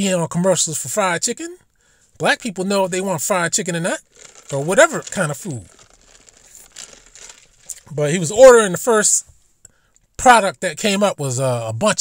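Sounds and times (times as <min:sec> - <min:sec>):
man talking: 0:02.2 - 0:05.7, 0:07.8 - 0:09.2, 0:10.2 - 0:12.0
faint rustling: 0:04.0 - 0:08.4.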